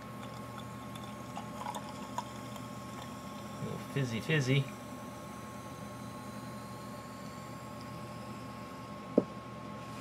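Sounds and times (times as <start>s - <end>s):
drink fizzing: 0.2s - 3.1s
drink pouring into a glass: 0.2s - 3.1s.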